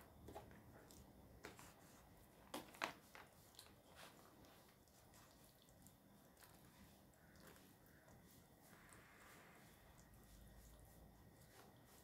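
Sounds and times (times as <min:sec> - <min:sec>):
soft rustles of twine: 0:00.0 - 0:12.0.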